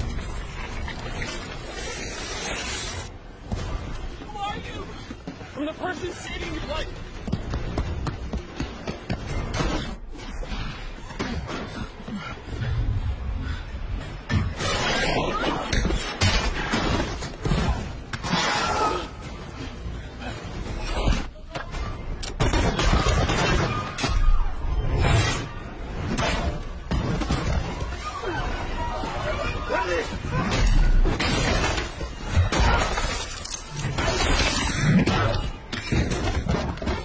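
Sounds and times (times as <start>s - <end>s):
tense music score: 0.0s - 37.0s
hurried running footsteps: 6.9s - 9.5s.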